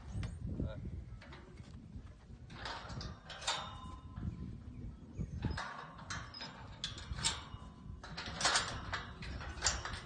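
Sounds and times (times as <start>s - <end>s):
metallic clinking and rattling: 2.4s - 4.5s, 5.4s - 10.0s.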